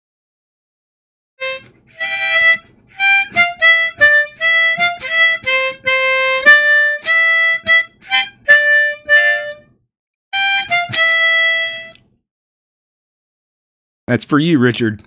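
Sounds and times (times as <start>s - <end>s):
harmonica melody: 1.4s - 12.0s.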